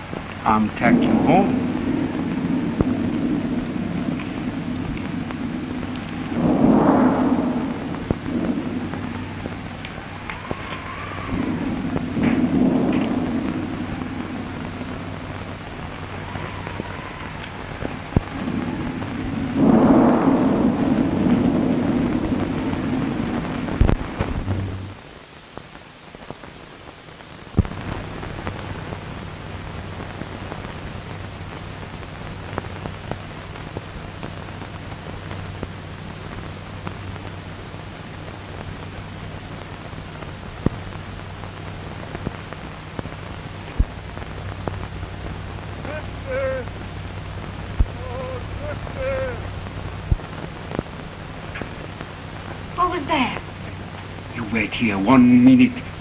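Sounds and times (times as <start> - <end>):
rolling thunder: 0.0 - 25.0, 38.9 - 56.0
sharp thunder crack: 0.0 - 25.0
whistling wind: 0.0 - 25.0
wind rising and falling: 0.0 - 26.4, 27.6 - 56.0.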